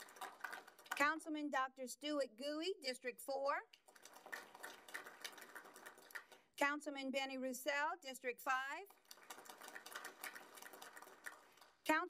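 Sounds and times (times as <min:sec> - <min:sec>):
audience applause: 0:00.0 - 0:01.0, 0:03.9 - 0:06.4, 0:09.0 - 0:11.7.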